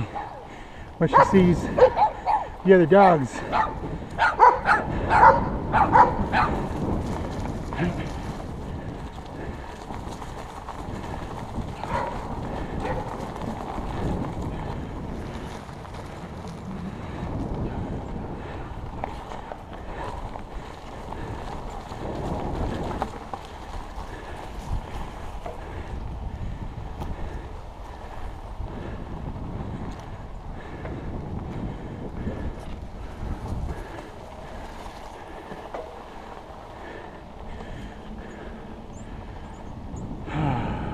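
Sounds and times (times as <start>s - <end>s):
bike tyres rolling over grass: 0.0s - 40.9s
wind on microphone: 0.0s - 40.9s
dog barking: 1.1s - 2.5s, 3.5s - 6.6s, 11.9s - 12.2s, 12.8s - 13.1s.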